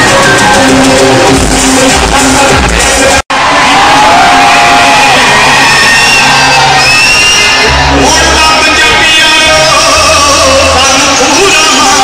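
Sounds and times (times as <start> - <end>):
crowd noise: 0.0 - 12.0
loud live concert music: 0.0 - 12.0.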